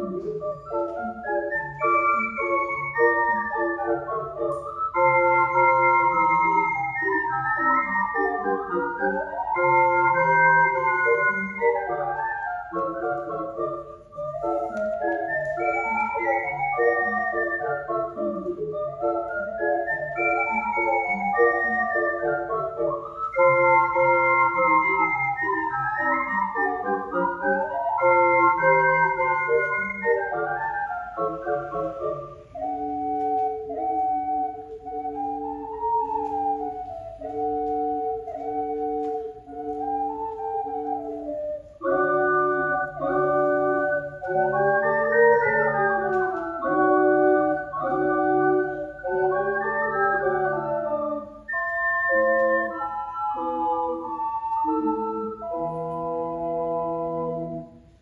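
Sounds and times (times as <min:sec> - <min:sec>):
ocarina ensemble playing chords: 0:00.0 - 0:58.0.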